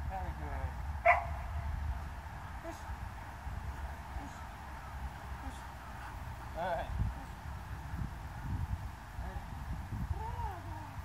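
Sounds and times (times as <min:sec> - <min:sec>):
dog barking: 0:01.0 - 0:01.4.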